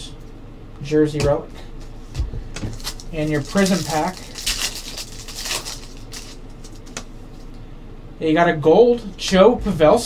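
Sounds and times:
foil pack crinkling: 0:02.6 - 0:07.0.

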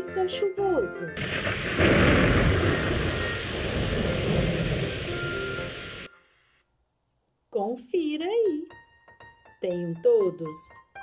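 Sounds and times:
rain rushing: 0:01.2 - 0:06.1
rumbling thunder: 0:01.2 - 0:06.1.

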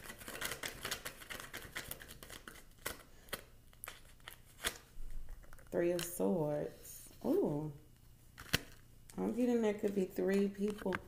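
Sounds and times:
cards shuffling and riffling: 0:00.0 - 0:06.2, 0:08.4 - 0:08.8
card snaps: 0:08.4 - 0:08.8.

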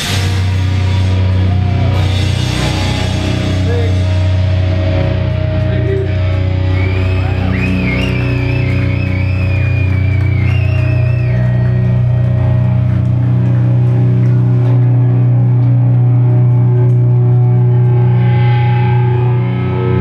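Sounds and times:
heavy rock band playing live: 0:00.0 - 0:20.0
high wavering guitar line: 0:00.0 - 0:20.0.

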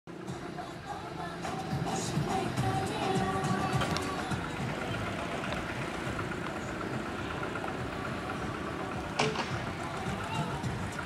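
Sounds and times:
car engine idling: 0:00.1 - 0:11.0
faint music: 0:00.1 - 0:11.0.

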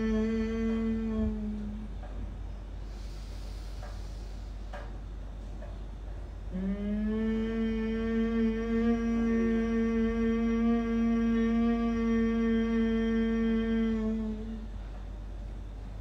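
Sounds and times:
woman humming: 0:00.0 - 0:02.4, 0:06.4 - 0:15.2.

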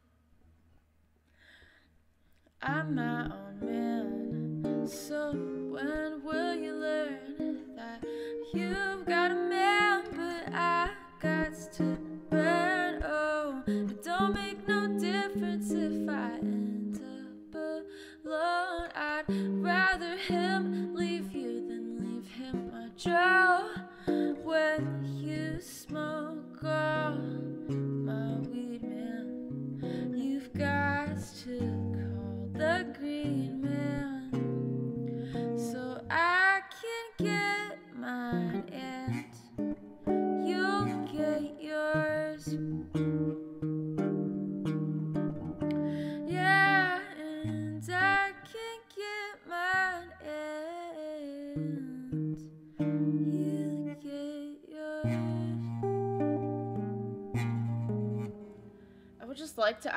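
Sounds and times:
woman singing: 0:02.6 - 0:43.0, 0:45.7 - 0:57.5
guitar chords: 0:02.6 - 0:48.7, 0:49.3 - 0:59.9.

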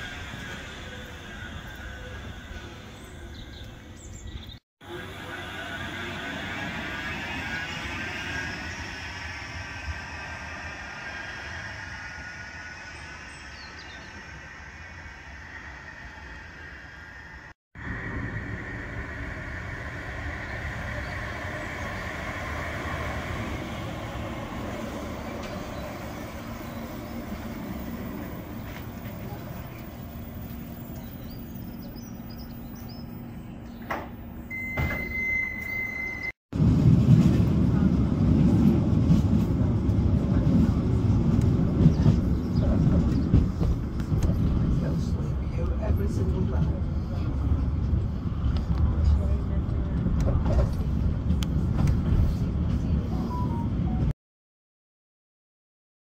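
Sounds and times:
tram motor whine: 0:00.0 - 0:54.0
tram low rumble: 0:00.0 - 0:54.1
short steady beep: 0:34.5 - 0:36.3.

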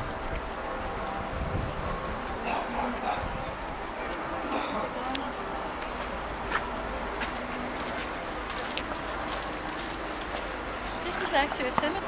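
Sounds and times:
indistinct voices: 0:00.0 - 0:12.0
footsteps on stone paving: 0:05.1 - 0:12.0.

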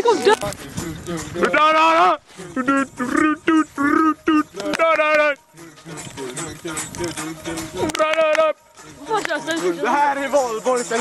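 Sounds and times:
person giving high-pitched calls: 0:01.1 - 0:06.9.

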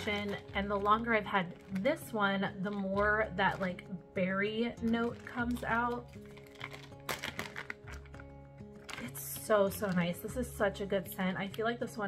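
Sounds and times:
plastic bag crinkling: 0:00.0 - 0:03.8, 0:04.8 - 0:10.2
soft background music: 0:00.0 - 0:12.0.

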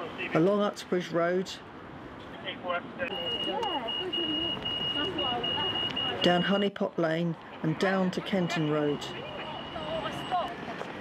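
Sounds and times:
crossing signal beeping: 0:03.0 - 0:06.8, 0:07.9 - 0:10.7
women's voices: 0:03.4 - 0:06.2, 0:09.1 - 0:10.9.

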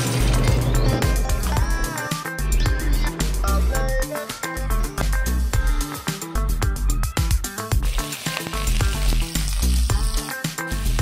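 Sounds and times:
music with bass-heavy beat: 0:00.0 - 0:11.0
garlic and onion sizzling: 0:07.1 - 0:11.0.

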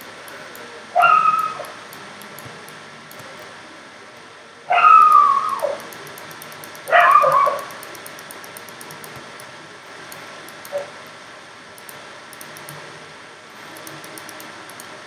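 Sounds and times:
high whining animal calls: 0:01.0 - 0:01.7, 0:04.7 - 0:05.8, 0:06.9 - 0:07.7.

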